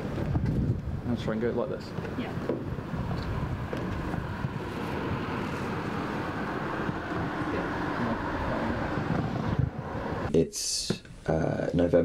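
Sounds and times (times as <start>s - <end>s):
wind buffeting microphone: 0.0s - 10.4s
road traffic rumble: 0.0s - 11.6s.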